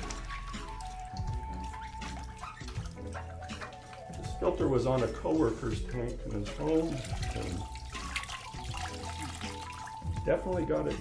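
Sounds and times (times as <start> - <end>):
background music with held notes: 0.0 - 11.0
water sloshing and dripping: 0.0 - 11.0.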